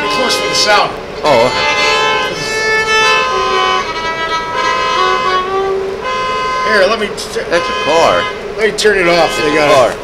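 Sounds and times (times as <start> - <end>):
solo violin slow melody: 0.0 - 8.5.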